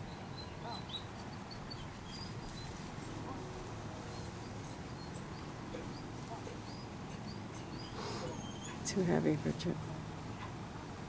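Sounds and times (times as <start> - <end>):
open-field background: 0.0 - 11.0.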